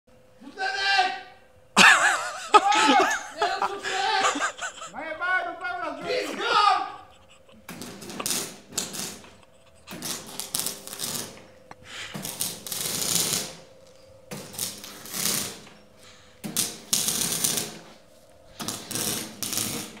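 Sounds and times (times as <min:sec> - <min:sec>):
welder arc crackling: 0:07.6 - 0:20.0.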